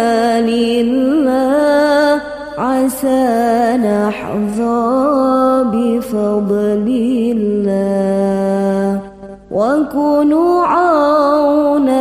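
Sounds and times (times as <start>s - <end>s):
person singing devotional song: 0.0s - 12.0s.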